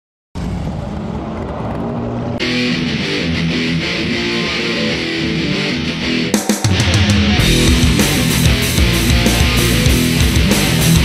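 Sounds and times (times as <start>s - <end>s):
motorcycle engine running: 7.4s - 11.0s.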